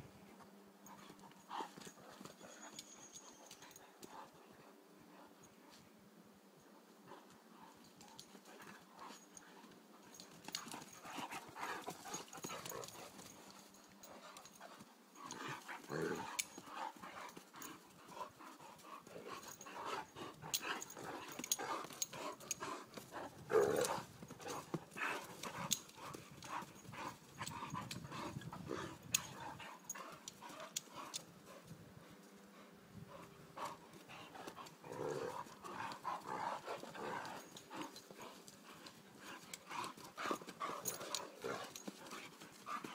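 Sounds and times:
dogs play-fighting: 0:00.7 - 0:05.9, 0:06.7 - 0:42.9.

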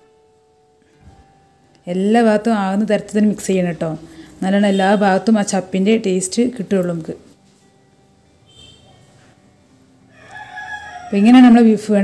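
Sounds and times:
rooster crowing: 0:10.1 - 0:11.5.

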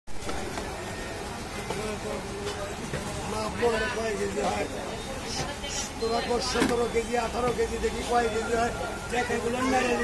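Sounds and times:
busy outdoor street market: 0:00.1 - 0:10.0
faint voices: 0:00.2 - 0:10.0.

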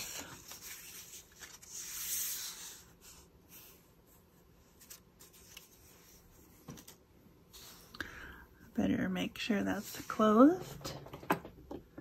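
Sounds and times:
soft rustling and rubbing: 0:00.0 - 0:08.0.

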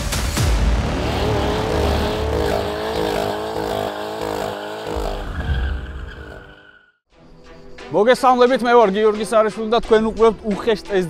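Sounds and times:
intro music: 0:00.0 - 0:04.2
tyre squeal: 0:01.1 - 0:06.9.

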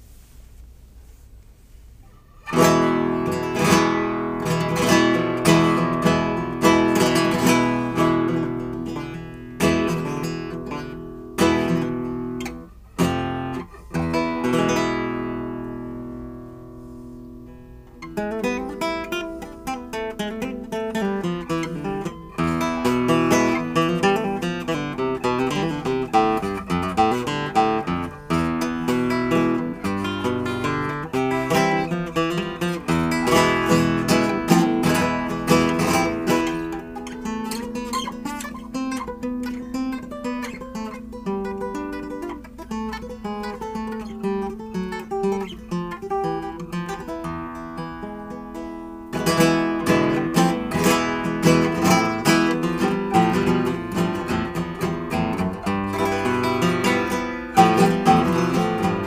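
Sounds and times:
classical guitar playing: 0:02.2 - 0:59.0.

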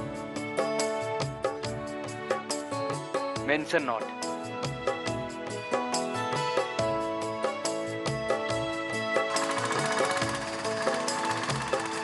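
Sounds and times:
background music: 0:00.0 - 0:12.0
engine clattering: 0:09.4 - 0:12.0.

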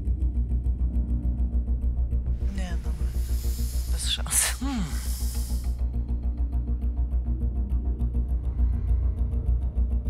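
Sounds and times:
tension music with pulsing bass: 0:00.0 - 0:10.0.

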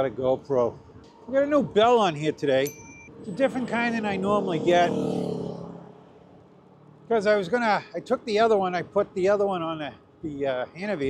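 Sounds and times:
bicycle bell ringing: 0:02.6 - 0:03.2.

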